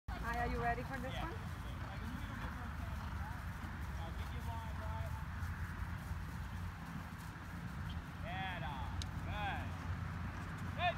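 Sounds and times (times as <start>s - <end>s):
horse hoofbeats on grass: 0.1s - 10.9s.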